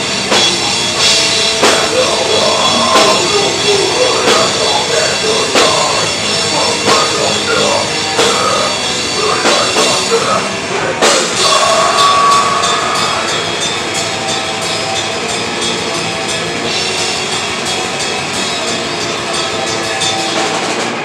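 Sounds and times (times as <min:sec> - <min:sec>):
live metal band playing: 0:00.0 - 0:21.0.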